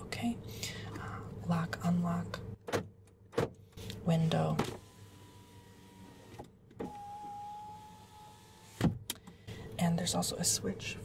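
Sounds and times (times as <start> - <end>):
power window motor whining: 4.7 - 9.1.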